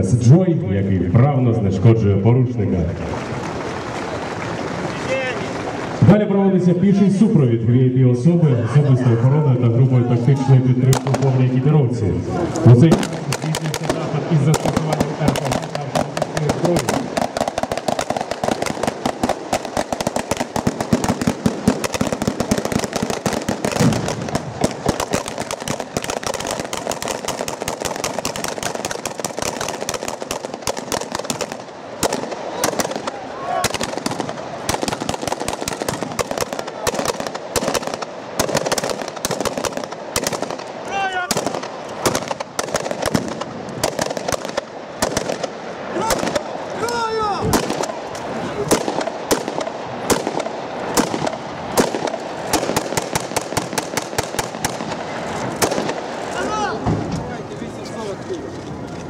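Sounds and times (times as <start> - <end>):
rapid rifle gunfire: 10.9 - 11.4, 12.7 - 46.6, 47.5 - 56.3.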